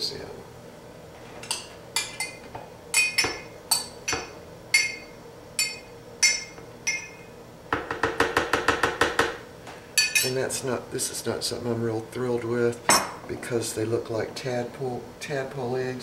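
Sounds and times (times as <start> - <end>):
metal spoon clinking against glass: 1.4 - 7.3, 10.0 - 10.4.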